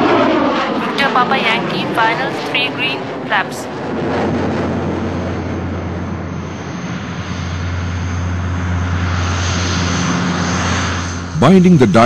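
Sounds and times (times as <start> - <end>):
turboprop aircraft propeller drone: 0.0 - 12.0.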